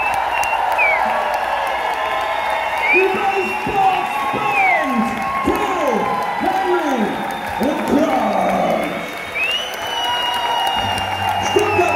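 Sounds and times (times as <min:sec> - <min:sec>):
long high whistle: 0:00.0 - 0:01.1, 0:09.2 - 0:11.9
audience applauding: 0:00.0 - 0:11.9.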